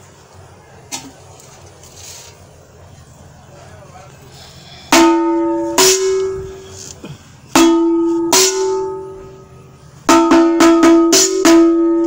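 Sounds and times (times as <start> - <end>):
metal gong ringing: 4.9 - 6.6, 7.5 - 12.0.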